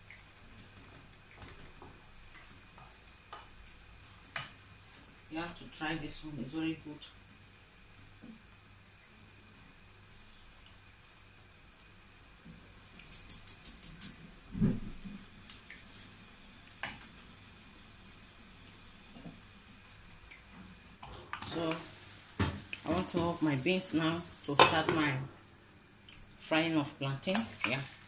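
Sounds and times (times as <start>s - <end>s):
vegetables sizzling in a frying pan: 0.0s - 14.5s, 15.2s - 28.0s
wooden spoon knocking on pan: 22.4s - 23.2s.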